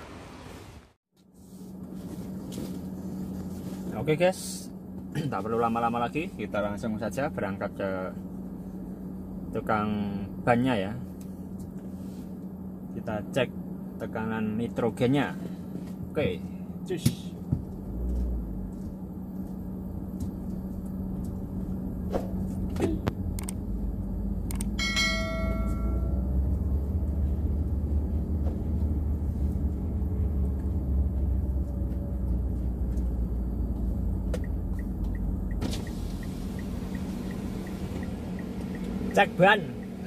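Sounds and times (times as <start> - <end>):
car engine hum: 0.0 - 40.0
road rumble: 0.0 - 40.0
ringing chime: 24.8 - 26.3.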